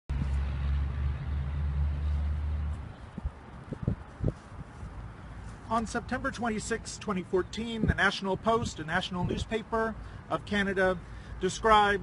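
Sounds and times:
vehicle engine rumble: 0.1s - 11.4s.

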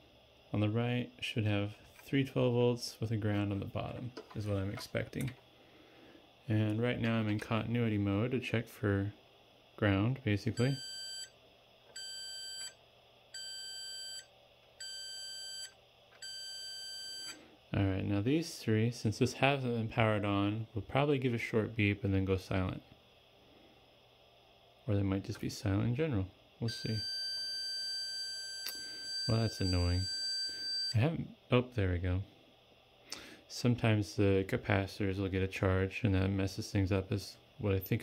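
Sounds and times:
multimeter continuity beeps: 10.5s - 12.8s, 13.4s - 17.4s, 26.7s - 31.0s.

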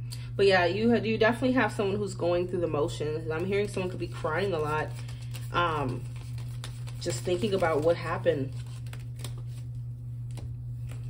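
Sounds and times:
steady low hum: 0.0s - 11.0s
cards shuffling clicks: 4.6s - 7.9s, 8.5s - 11.0s.

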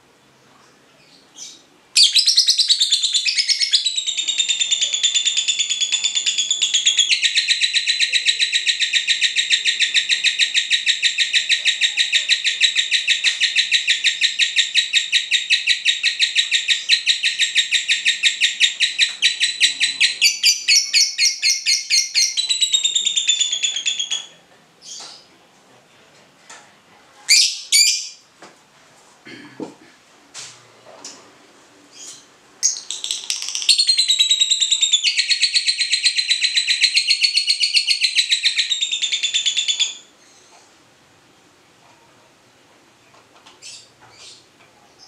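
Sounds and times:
bird chattering trill: 2.0s - 24.2s.

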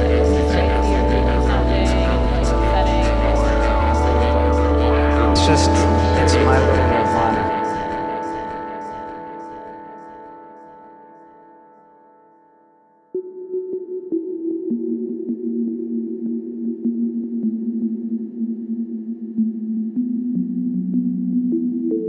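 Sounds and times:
low sustained synth tones: 0.0s - 10.1s
held synth note: 4.8s - 8.4s.

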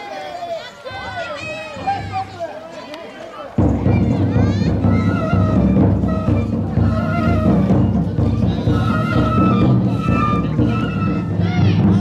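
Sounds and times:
high voices calling out together: 0.0s - 12.0s.

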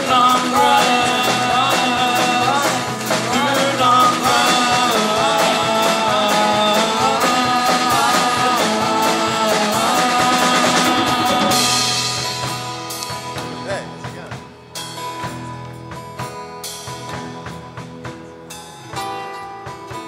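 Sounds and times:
folk-rock band playing: 0.0s - 20.0s.

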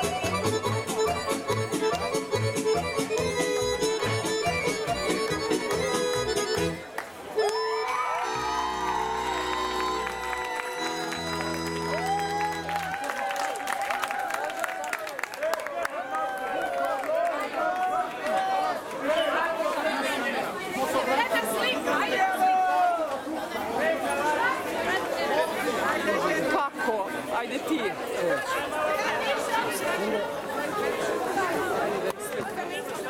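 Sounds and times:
crowd talking: 0.0s - 33.0s.

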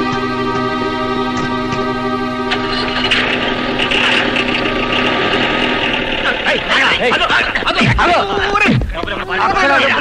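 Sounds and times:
van engine running: 0.2s - 8.0s.

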